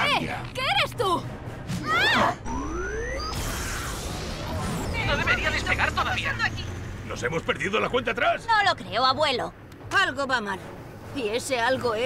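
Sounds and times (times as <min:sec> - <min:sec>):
cartoon spaceship engines: 0:02.2 - 0:07.6.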